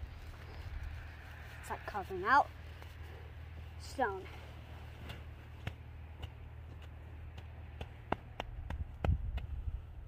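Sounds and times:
wind rumble on microphone: 8.3s - 10.0s.

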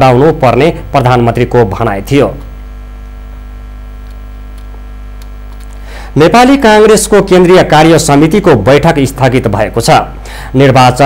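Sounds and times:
narrator speaking: 0.0s - 2.5s, 6.1s - 11.0s
low electrical mains hum: 0.0s - 11.0s.

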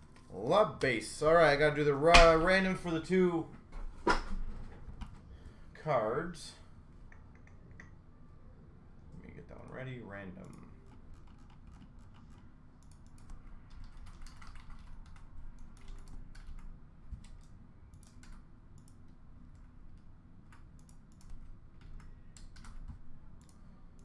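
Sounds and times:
keyboard typing: 10.4s - 19.7s, 20.5s - 24.0s.

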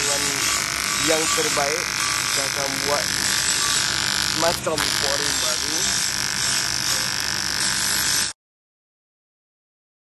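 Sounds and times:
welding arc buzzing hiss: 0.0s - 8.4s.

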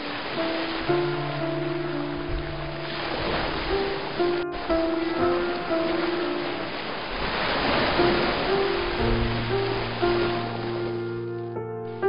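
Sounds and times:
surf breaking: 0.0s - 11.4s
slow instrumental music: 0.0s - 12.0s.

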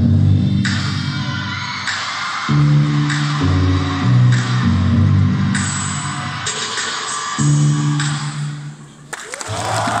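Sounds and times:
amplified dance music: 0.0s - 8.8s
audience clapping: 9.1s - 10.0s
audience cheering: 9.2s - 10.0s.

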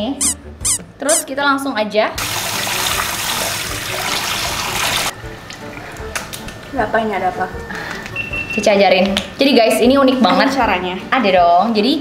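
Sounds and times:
water running: 2.2s - 6.8s.

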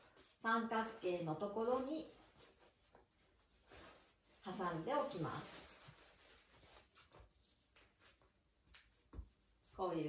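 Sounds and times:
faint clicks and rustles: 0.0s - 9.8s.

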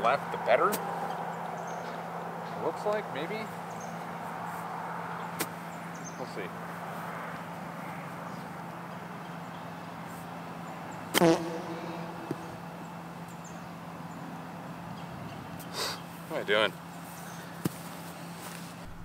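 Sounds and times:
low background hum: 0.0s - 19.0s
golf club striking ball: 11.1s - 13.3s.

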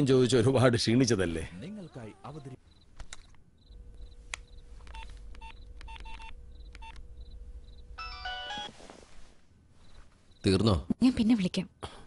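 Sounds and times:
low hum: 3.5s - 8.2s
phone keypad beeps: 4.9s - 7.0s.

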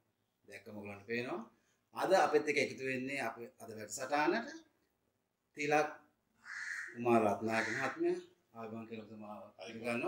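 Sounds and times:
harsh rasping call: 6.4s - 8.0s
man speaking: 6.9s - 10.0s.

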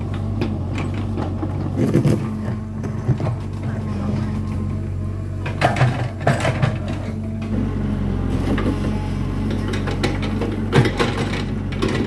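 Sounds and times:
diesel engine running: 0.0s - 12.0s
excavator bucket digging soil: 0.0s - 12.0s.

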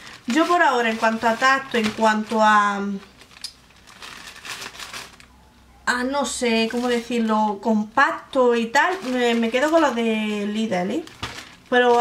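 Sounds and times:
plastic wrapping crinkling: 0.0s - 5.4s, 6.4s - 7.6s, 8.3s - 12.0s.

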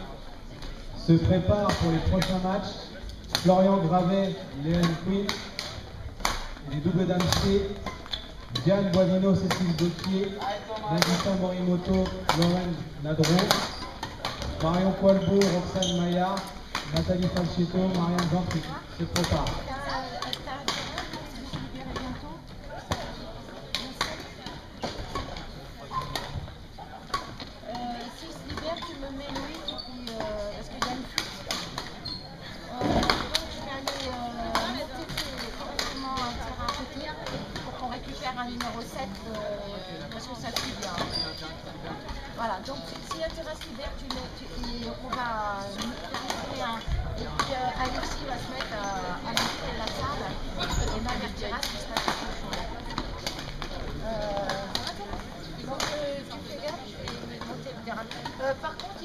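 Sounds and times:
murmur of voices: 0.0s - 59.0s
rackets hitting shuttlecocks: 3.2s - 32.0s, 33.0s - 39.2s, 40.2s - 41.1s, 42.9s - 59.0s.

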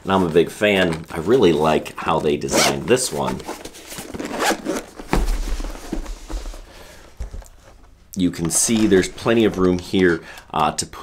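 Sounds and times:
zipper on fabric case: 2.4s - 2.9s, 4.1s - 4.9s.

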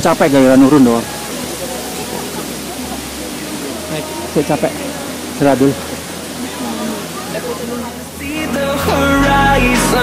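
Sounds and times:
faint voices: 0.0s - 10.0s
waterfall roaring: 0.0s - 10.0s.

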